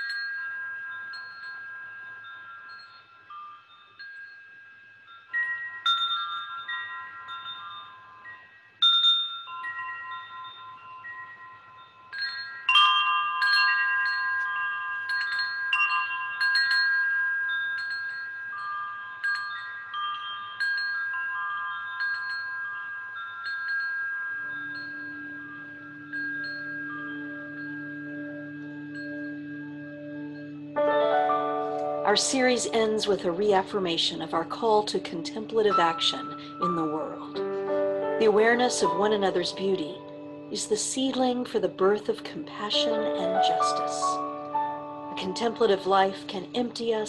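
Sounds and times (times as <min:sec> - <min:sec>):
low steady tone: 0:00.0 - 0:47.0
wind chimes ringing: 0:00.0 - 0:47.0.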